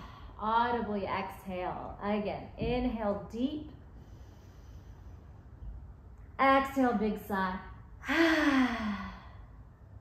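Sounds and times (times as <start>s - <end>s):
woman sighing: 8.0s - 9.4s.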